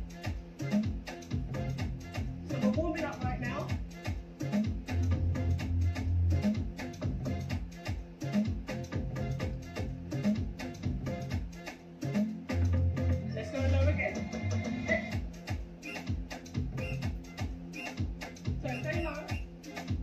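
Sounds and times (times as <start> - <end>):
dance music beat and bass: 0.0 - 20.0.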